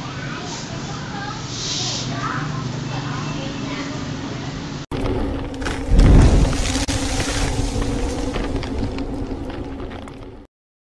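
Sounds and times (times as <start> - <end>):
deep boom: 4.9 - 10.5.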